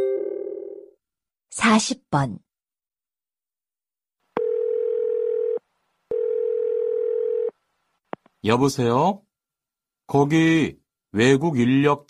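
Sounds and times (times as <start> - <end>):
telephone ringback tone: 4.4 - 7.5.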